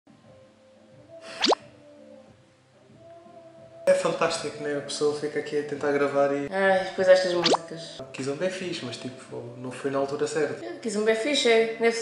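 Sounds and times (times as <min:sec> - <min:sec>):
faint kizomba music: 0:00.1 - 0:12.0
rising plop sound effect: 0:01.3 - 0:01.6, 0:07.4 - 0:07.6.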